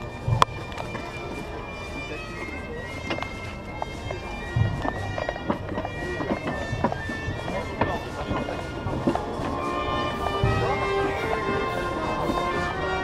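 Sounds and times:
bagpipes playing: 0:00.0 - 0:13.0
voices: 0:00.0 - 0:13.0.

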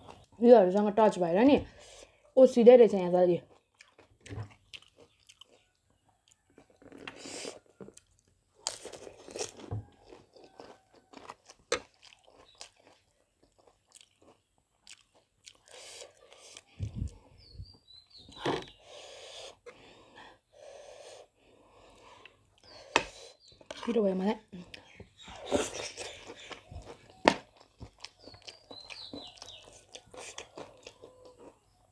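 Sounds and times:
crunchy chewing: 0:03.4 - 0:17.5, 0:24.6 - 0:31.9.

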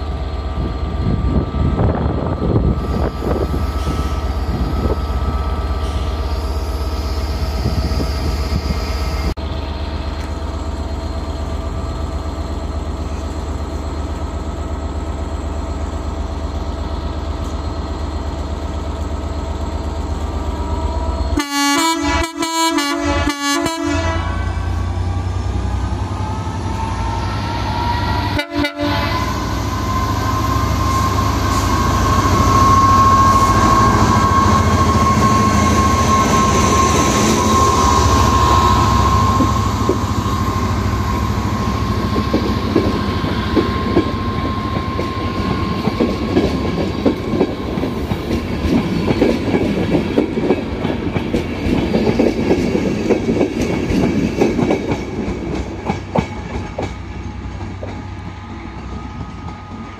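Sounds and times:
diesel locomotive whine: 0:00.0 - 0:59.9
wheels clacking over rail joints: 0:41.7 - 0:59.9.

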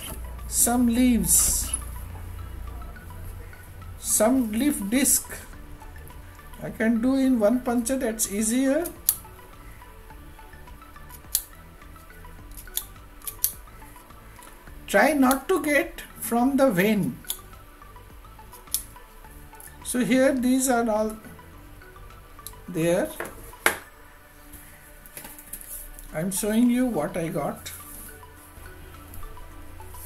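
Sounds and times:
faint background music: 0:00.0 - 0:30.0.

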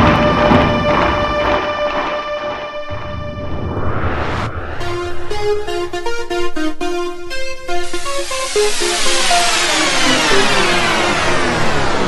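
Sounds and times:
whooshing noise sweep: 0:02.7 - 0:06.8, 0:07.8 - 0:12.0
electronic dance music: 0:04.8 - 0:12.0.

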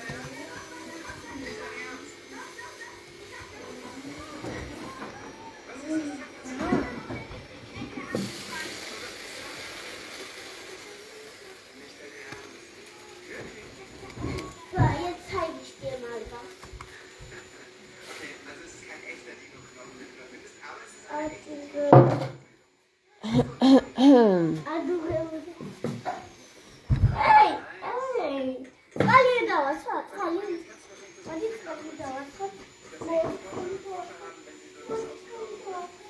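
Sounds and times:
faint scattered speech: 0:00.0 - 0:36.0.

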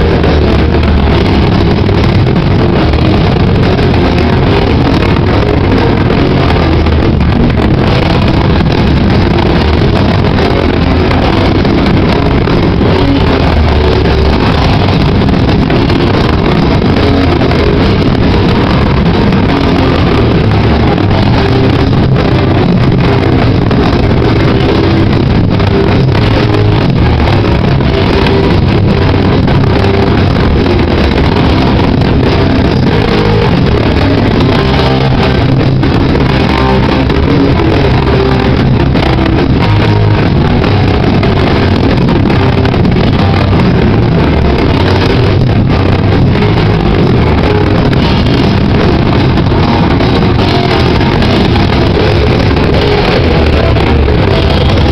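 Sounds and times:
punk band playing live distorted: 0:00.0 - 0:54.9.

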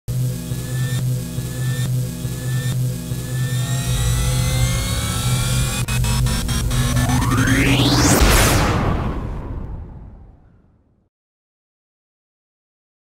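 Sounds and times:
low drone: 0:00.3 - 0:10.7
rising tones: 0:02.5 - 0:10.5
deep rumble: 0:03.7 - 0:10.7.

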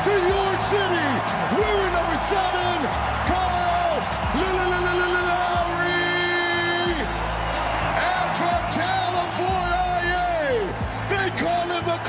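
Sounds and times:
music over loudspeakers: 0:00.0 - 0:12.0.

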